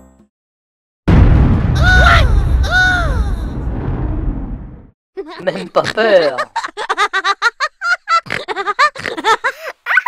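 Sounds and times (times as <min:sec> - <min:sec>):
deep comic boom: 0:01.1 - 0:05.0.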